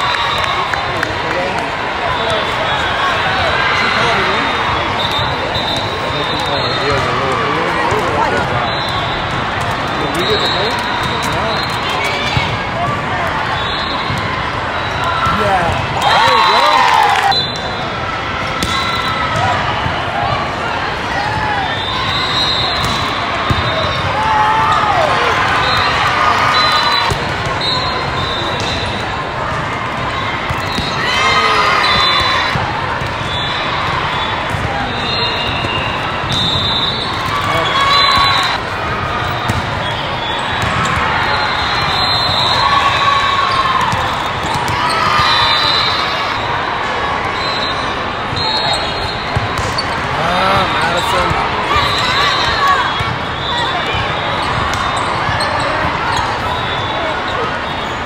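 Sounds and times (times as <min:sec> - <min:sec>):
babble of crowd voices: 0:00.0 - 0:58.0
players calling out: 0:00.0 - 0:58.0
volleyball struck and bouncing: 0:18.6 - 0:19.5, 0:39.3 - 0:39.9.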